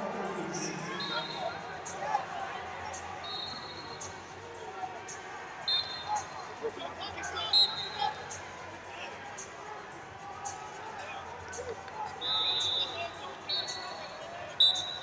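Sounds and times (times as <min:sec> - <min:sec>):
background voices and chatter: 0:00.0 - 0:15.0
referee's whistle blasts: 0:00.7 - 0:01.7, 0:03.2 - 0:04.1, 0:05.7 - 0:06.4, 0:07.5 - 0:08.2, 0:12.2 - 0:15.0.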